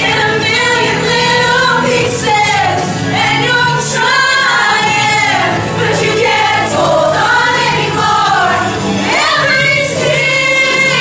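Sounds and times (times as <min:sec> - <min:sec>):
women's choir singing in harmony: 0:00.0 - 0:11.0.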